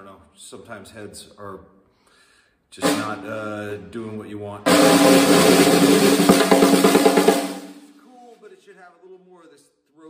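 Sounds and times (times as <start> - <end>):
snare drum ringing: 2.8 - 3.6, 4.7 - 8.0
snare drum roll and strokes: 2.8 - 3.8, 4.7 - 8.2.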